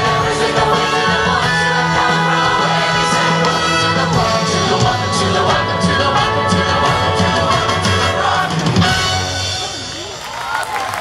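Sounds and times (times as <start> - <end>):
live band playing up-tempo song: 0.0 - 10.8.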